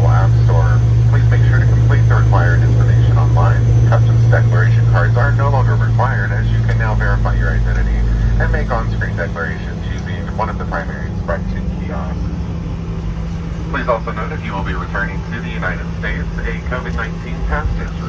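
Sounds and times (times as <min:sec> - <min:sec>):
person talking over pa: 0:00.0 - 0:12.2, 0:13.7 - 0:18.0
jet airliner cabin drone: 0:00.0 - 0:18.0.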